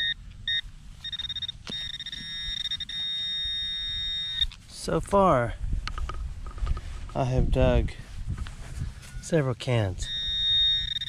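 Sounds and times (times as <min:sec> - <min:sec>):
metal detector pinpointer beeps: 0:00.0 - 0:04.6, 0:10.0 - 0:11.0.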